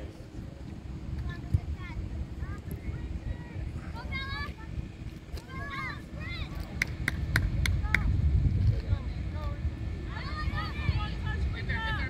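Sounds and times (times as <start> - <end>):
wind rumbling on microphone: 0.0 - 12.0
sharp claps: 6.6 - 8.1.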